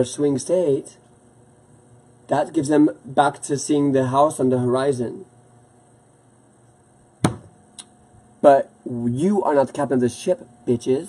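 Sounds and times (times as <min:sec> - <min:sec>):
sharp click or knock: 0:07.2 - 0:07.9.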